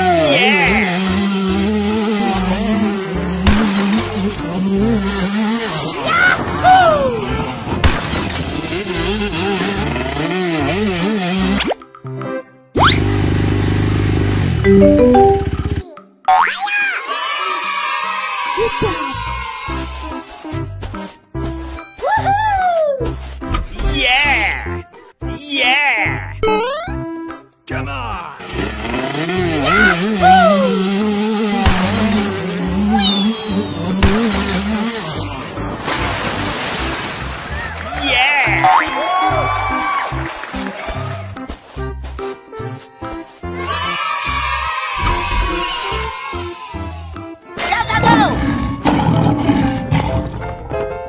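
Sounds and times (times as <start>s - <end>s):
cartoon music: 14.6s - 16.7s, 25.6s - 27.2s, 29.5s - 34.6s
springy cartoon sound effect: 14.7s - 16.7s, 26.4s - 27.0s, 32.9s - 34.6s.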